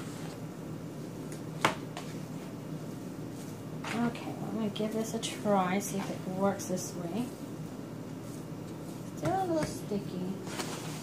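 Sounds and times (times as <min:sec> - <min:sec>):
hands kneading dough: 0:00.0 - 0:11.0.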